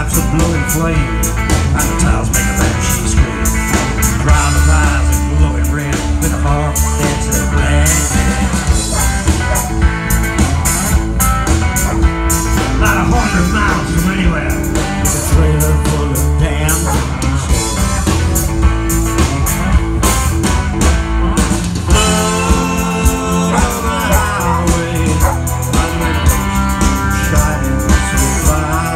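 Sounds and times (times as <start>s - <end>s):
blues-rock band playing: 0.0s - 28.9s
guitar lines: 0.0s - 28.9s
steady drum beat: 0.0s - 28.9s.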